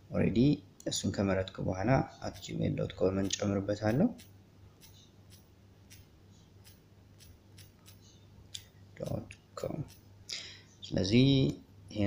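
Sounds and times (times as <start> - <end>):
phone keyboard typing clicks: 3.2 - 10.1.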